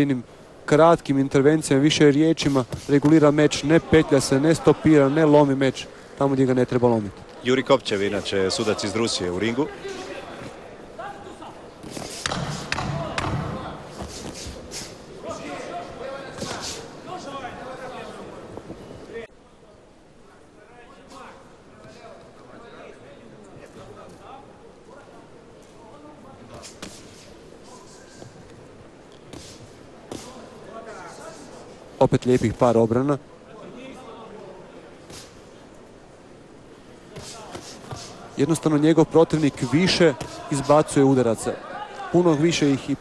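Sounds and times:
boxing ring ambience: 0.0s - 43.0s
crowd voices in large hall: 0.0s - 43.0s.

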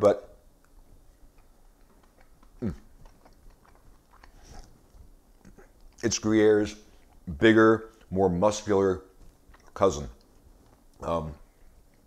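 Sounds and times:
man chewing cheese: 0.4s - 12.0s.

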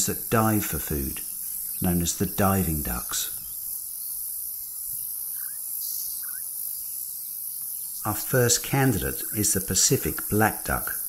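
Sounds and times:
insects chorus: 0.0s - 11.0s.

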